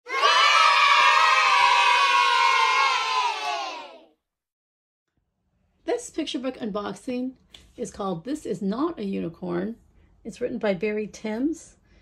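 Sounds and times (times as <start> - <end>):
children cheering: 0.0 - 4.1.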